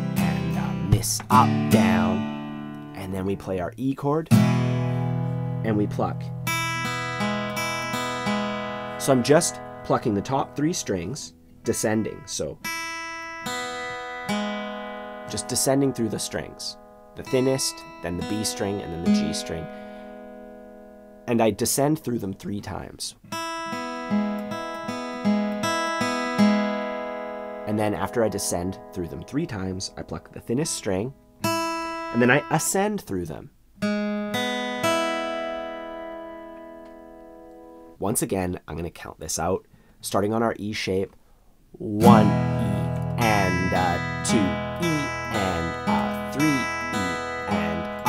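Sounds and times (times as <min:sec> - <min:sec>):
acoustic guitar picked notes: 0:00.0 - 0:38.1, 0:41.8 - 0:48.0.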